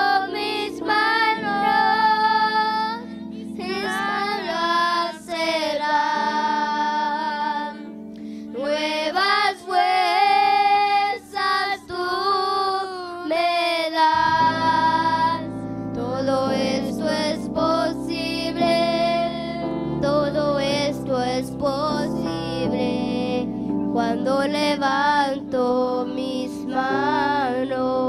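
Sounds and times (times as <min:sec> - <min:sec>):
woman singing: 0:00.0 - 0:07.9, 0:08.5 - 0:28.0
accompanying chords: 0:00.0 - 0:12.8, 0:13.4 - 0:28.0
children singing together: 0:00.0 - 0:23.4, 0:24.0 - 0:28.0.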